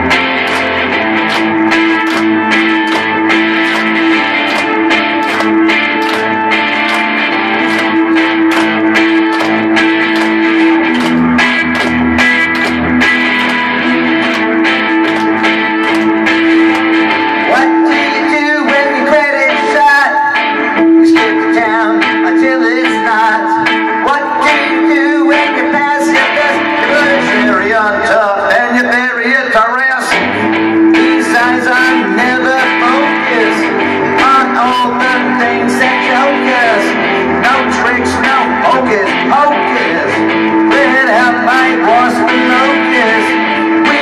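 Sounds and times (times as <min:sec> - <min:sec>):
electric guitar with vibrato: 0:00.0 - 0:44.0
man singing: 0:17.4 - 0:44.0.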